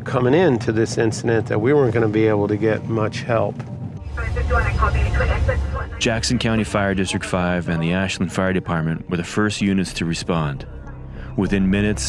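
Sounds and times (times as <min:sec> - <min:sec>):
indistinct voices: 0:04.0 - 0:10.6.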